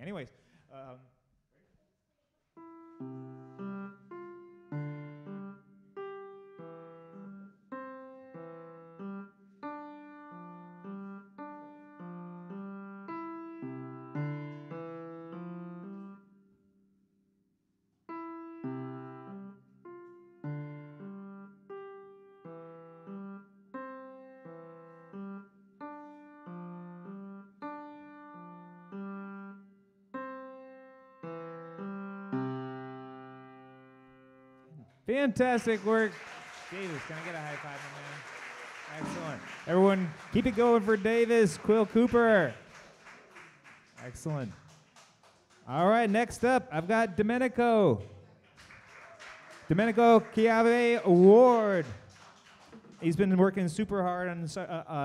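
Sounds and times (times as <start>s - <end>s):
slow piano piece: 2.6s - 16.9s, 18.0s - 34.9s, 38.8s - 44.0s.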